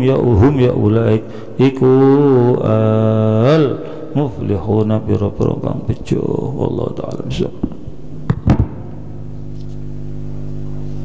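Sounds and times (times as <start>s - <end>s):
low drone of held tones: 0.0s - 11.0s.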